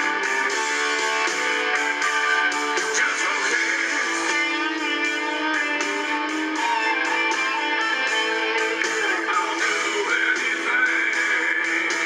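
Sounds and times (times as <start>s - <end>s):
electric guitar bending notes: 0.0s - 12.0s
steady drum beat: 0.0s - 12.0s.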